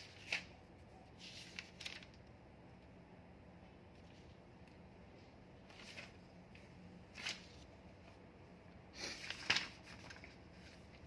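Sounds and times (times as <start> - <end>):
paper rustling: 0.0 - 2.3, 5.6 - 8.2, 9.0 - 11.0.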